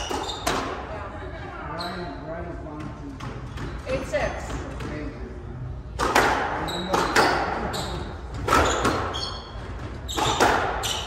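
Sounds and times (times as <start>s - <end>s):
short high squeak: 10.1s - 11.0s.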